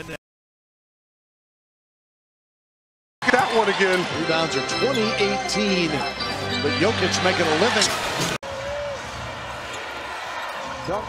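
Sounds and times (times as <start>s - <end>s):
commentator talking: 3.2s - 8.0s
arena crowd noise: 3.2s - 11.0s.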